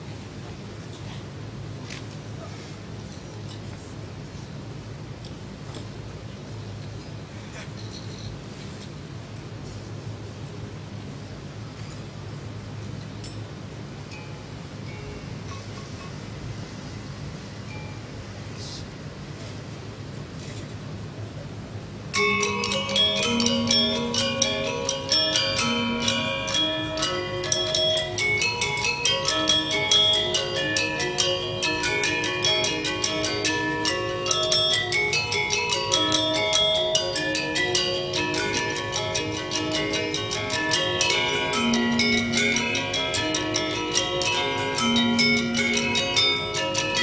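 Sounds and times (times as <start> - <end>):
metallophones struck with mallets: 22.1 - 47.0.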